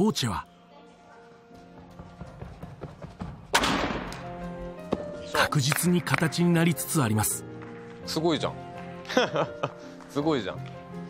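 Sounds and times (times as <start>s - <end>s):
soft background music: 0.0s - 11.0s
running footsteps on runway: 1.4s - 3.6s.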